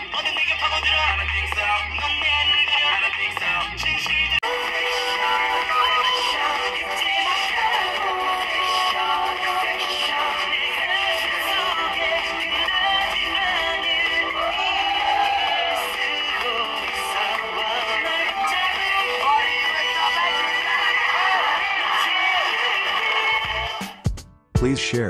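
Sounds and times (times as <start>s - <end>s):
pop music with singing on phone speaker: 0.0s - 25.0s.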